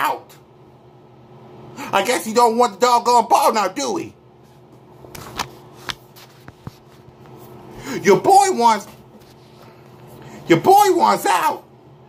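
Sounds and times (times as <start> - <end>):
faint steady hum: 0.0 - 12.0
man speaking: 1.8 - 4.2, 7.9 - 9.0, 10.4 - 11.7.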